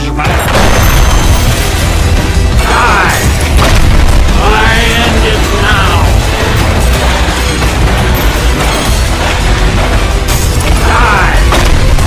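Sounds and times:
driving game music: 0.0s - 12.0s
gunfire and explosions: 0.0s - 12.0s.

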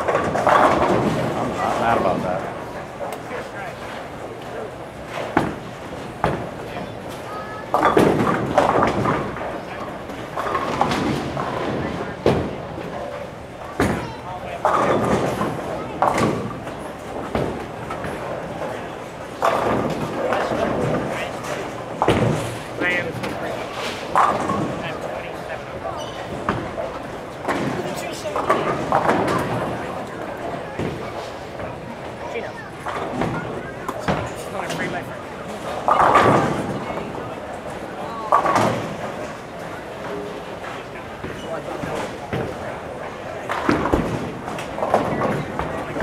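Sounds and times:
bowling balls crashing into pins: 0.0s - 2.3s, 7.7s - 13.2s, 14.6s - 25.2s, 25.8s - 32.2s, 32.8s - 46.0s
indistinct chatter: 0.0s - 46.0s.

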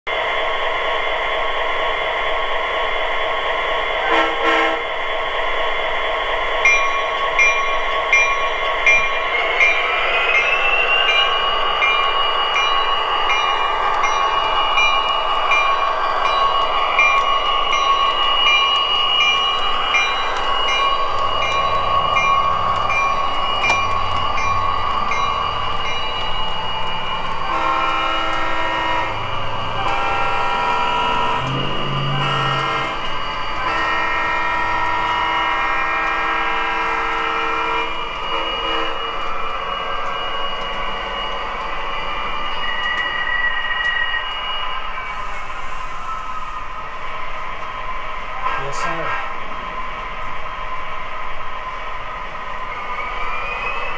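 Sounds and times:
locomotive horn blasts: 4.0s - 4.8s, 27.5s - 39.0s.

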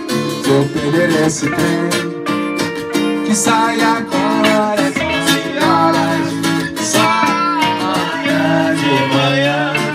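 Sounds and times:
guitars strumming: 0.0s - 9.9s
live band playing: 0.0s - 9.9s
man singing: 0.0s - 9.9s.

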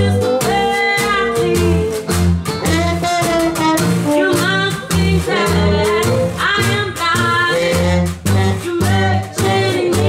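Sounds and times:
banjo strumming: 0.0s - 10.0s
bending lead melody: 0.0s - 10.0s
double bass walking line: 0.0s - 10.0s.

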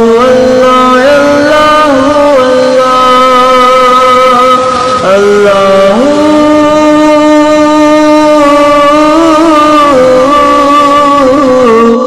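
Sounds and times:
person singing a long note: 0.0s - 12.0s.

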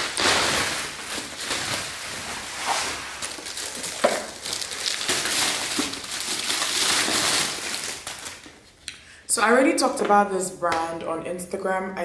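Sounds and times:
bubble wrap crinkling: 0.0s - 8.8s.

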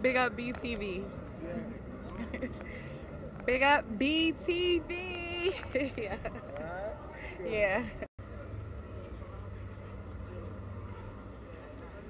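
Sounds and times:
distant voices: 0.0s - 12.0s
low street rumble: 0.0s - 12.0s.

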